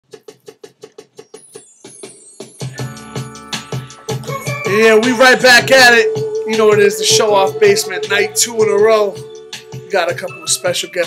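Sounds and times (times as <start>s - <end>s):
drum machine roll: 0.0s - 10.3s.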